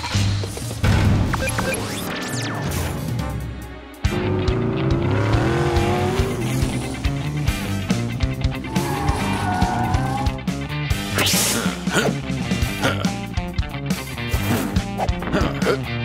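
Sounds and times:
background music with steady beat: 2.8s - 16.0s.

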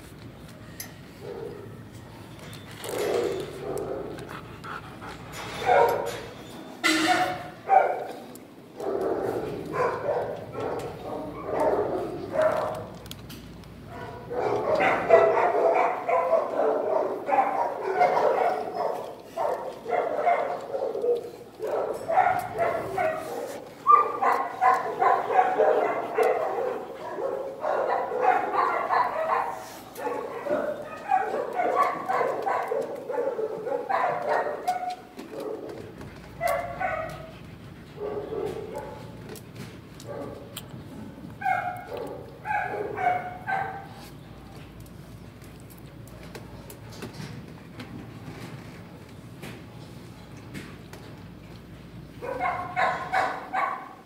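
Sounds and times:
dogs barking: 1.2s - 1.9s, 2.8s - 13.0s, 13.8s - 44.1s, 52.0s - 54.0s.

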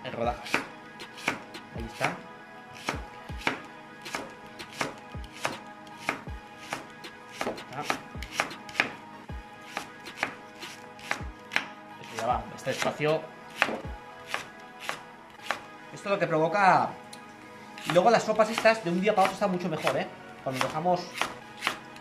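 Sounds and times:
knife chopping on wooden board: 0.4s - 2.2s, 2.8s - 9.0s, 9.7s - 13.0s, 13.6s - 15.7s, 17.8s - 21.8s.

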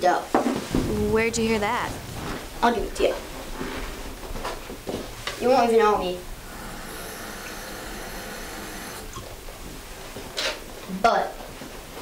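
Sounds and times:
steady hiss: 0.6s - 12.0s.

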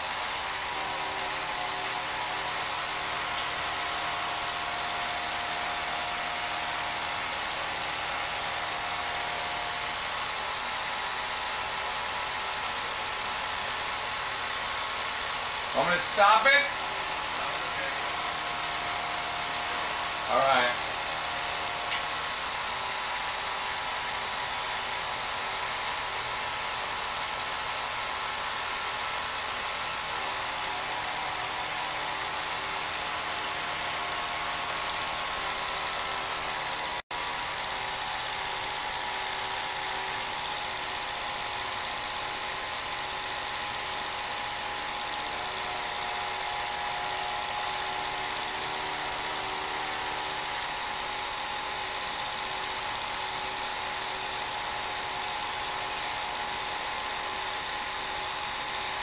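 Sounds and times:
movie projector clatter and hum: 0.0s - 59.0s.

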